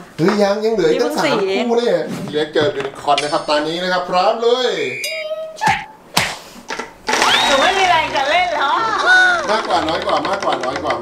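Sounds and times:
high gliding vocal tones: 4.9s - 6.0s
hand smacking prize wheel: 7.1s - 11.0s
spinning wheel whirring rattle: 7.2s - 11.0s.

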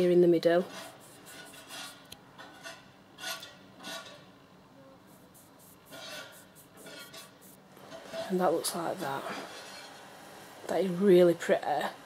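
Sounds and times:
fingertip rubbing powder on skin: 0.7s - 2.0s, 5.1s - 7.6s.

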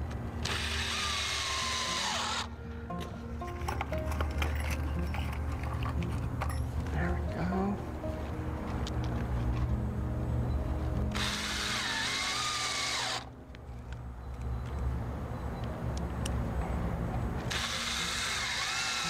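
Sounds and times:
cordless drill driving screws: 0.4s - 2.5s, 11.2s - 13.3s, 17.5s - 19.0s.

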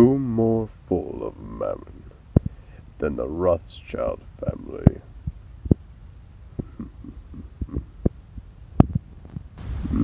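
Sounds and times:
low hum: 0.0s - 10.0s
low heartbeat-like thumps: 2.3s - 2.6s, 4.8s - 5.9s, 6.5s - 10.0s
hiss: 9.6s - 10.0s.

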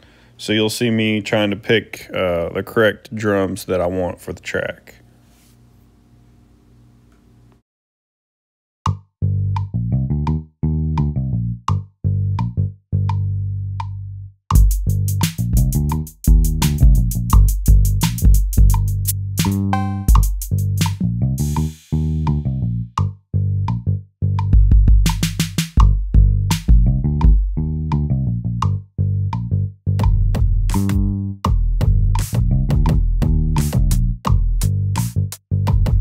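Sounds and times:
plucked bass notes: 8.8s - 36.0s
drum machine hits: 14.5s - 22.4s, 24.4s - 27.6s, 30.0s - 36.0s.

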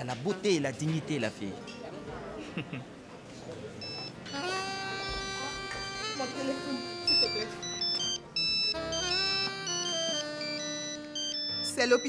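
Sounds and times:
phone ringtone melody: 3.8s - 12.0s.

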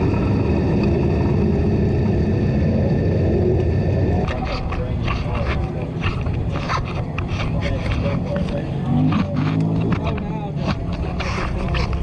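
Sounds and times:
engine running at low speed: 0.0s - 12.0s
muffled voices: 3.3s - 12.0s.

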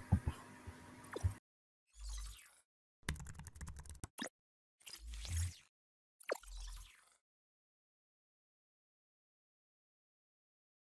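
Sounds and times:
keyboard typing clicks: 3.1s - 4.2s.

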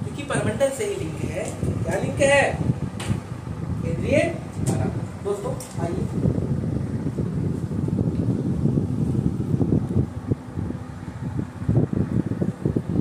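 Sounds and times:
wind buffeting microphone: 0.0s - 13.0s.

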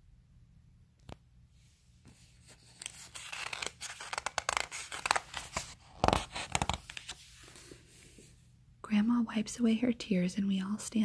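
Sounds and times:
book pages turning and rustling: 2.0s - 8.3s.

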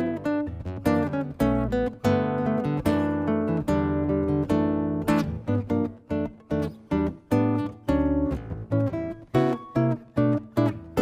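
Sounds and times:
acoustic jazz guitar fingerstyle: 0.0s - 11.0s.

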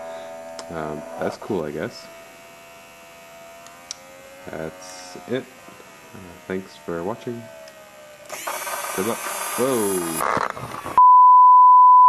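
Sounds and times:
small electric motor humming: 0.0s - 11.0s.

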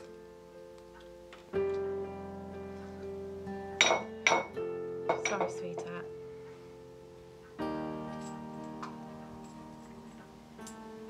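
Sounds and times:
glass clinking on table: 3.8s - 6.0s.

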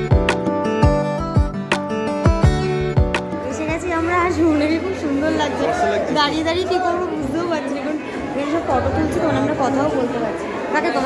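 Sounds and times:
chatter of guests in echoing hall: 3.3s - 11.0s.

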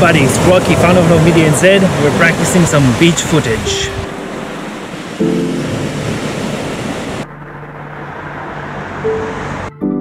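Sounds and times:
ocean surf: 0.0s - 9.7s.

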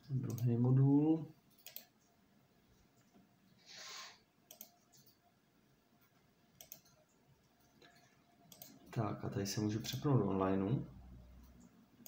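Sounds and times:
faint computer mouse clicks: 1.5s - 2.0s, 4.5s - 5.2s, 6.6s - 7.0s, 7.7s - 8.8s.

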